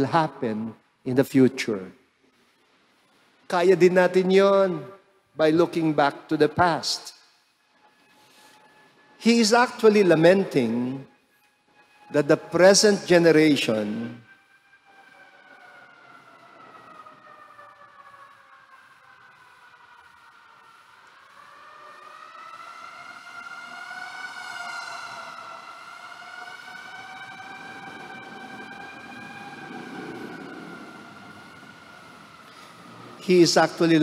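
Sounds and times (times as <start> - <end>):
siren wailing: 3.6 - 34.0.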